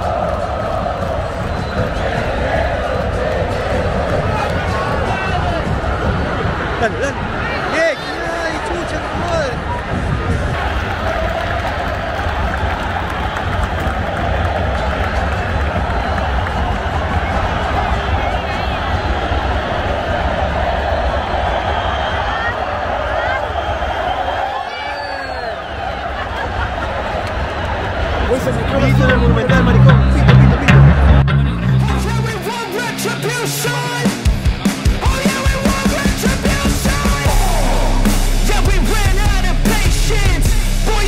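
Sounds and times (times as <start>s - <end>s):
stadium crowd chanting and shouting: 0.0s - 41.0s.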